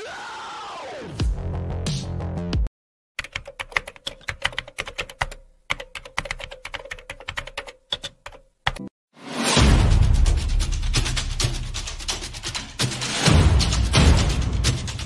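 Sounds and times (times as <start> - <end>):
computer keyboard typing: 3.2 - 8.9.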